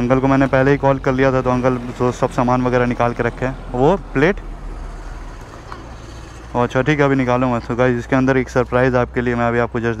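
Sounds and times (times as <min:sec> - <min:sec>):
man talking: 0:00.0 - 0:04.4, 0:06.5 - 0:10.0
road traffic noise: 0:00.0 - 0:10.0.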